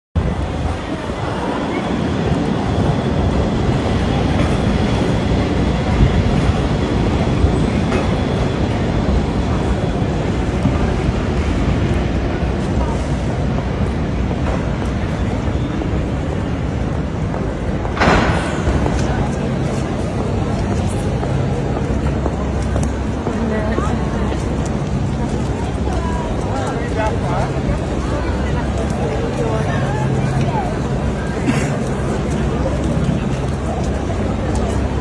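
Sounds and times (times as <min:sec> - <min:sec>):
street noise: 0:00.2 - 0:35.0
tram wheels and motor rumbling: 0:00.2 - 0:35.0
voices of passers-by: 0:00.2 - 0:35.0.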